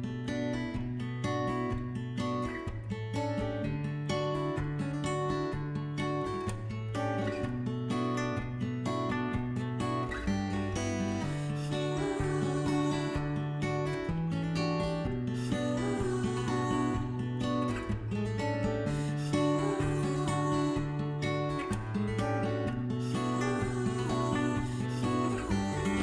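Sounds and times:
strummed acoustic guitar: 0.0s - 26.0s.

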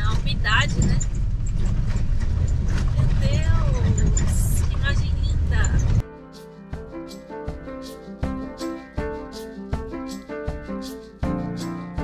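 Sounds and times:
vehicle driving on gravel road: 0.0s - 6.0s
background music: 6.0s - 12.0s.

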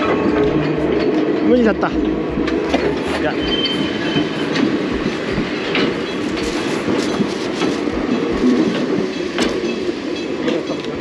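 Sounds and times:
electric train rumbling past: 0.0s - 11.0s
wheels clacking over rail joints: 0.0s - 11.0s.

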